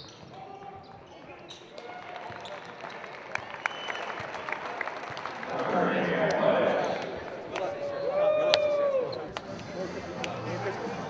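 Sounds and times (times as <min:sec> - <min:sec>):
shoe squeaks: 0:00.0 - 0:02.7
players and spectators talking: 0:00.0 - 0:11.0
crowd cheering and applause: 0:01.8 - 0:09.2.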